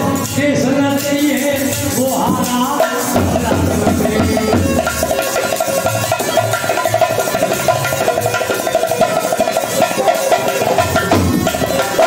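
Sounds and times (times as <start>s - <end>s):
harmonium: 0.0s - 12.0s
fast kettle drumming: 2.2s - 12.0s.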